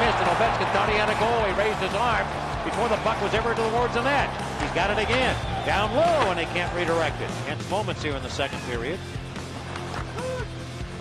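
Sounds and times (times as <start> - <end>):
arena crowd noise: 0.0 - 11.0
music: 0.0 - 11.0.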